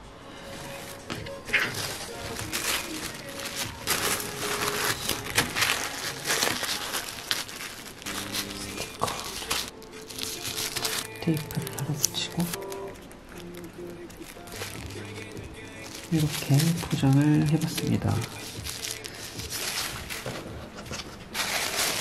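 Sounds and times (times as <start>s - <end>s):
soft background music: 0.0s - 22.0s
wrapping paper crinkling: 0.4s - 22.0s.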